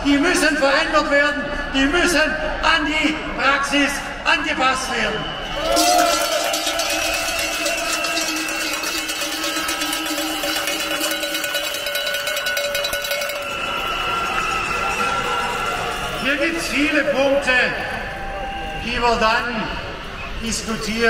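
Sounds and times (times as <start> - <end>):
cowbells clanging: 5.7 - 16.3.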